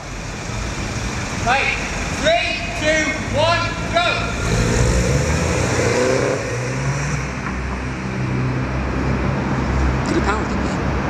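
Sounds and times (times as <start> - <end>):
car engines revving: 0.0 - 11.0.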